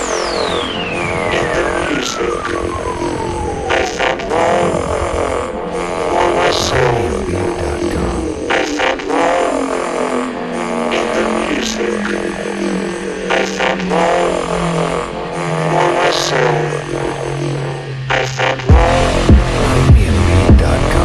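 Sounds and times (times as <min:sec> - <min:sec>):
electronic dance music: 0:00.0 - 0:21.0
wobbling synth sweeps: 0:00.0 - 0:21.0.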